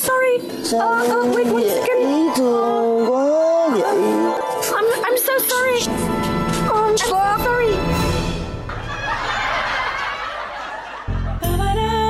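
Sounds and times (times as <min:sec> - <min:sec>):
audience laughter: 0:08.7 - 0:11.6.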